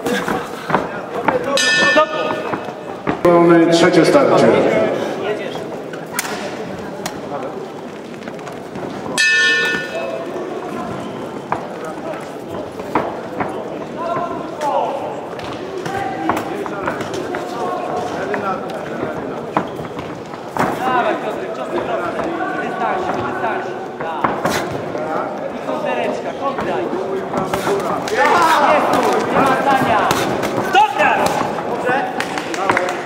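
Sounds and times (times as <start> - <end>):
murmur of voices in a hall: 0.0 - 33.0
boxing ring bell: 1.6 - 2.4, 9.2 - 10.2
people shouting: 28.0 - 31.5.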